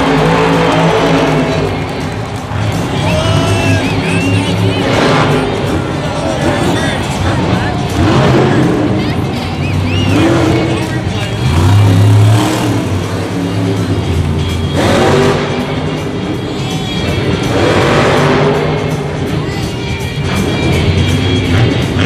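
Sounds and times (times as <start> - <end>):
arena music: 0.0 - 22.0
monster truck engine revving: 0.0 - 22.0.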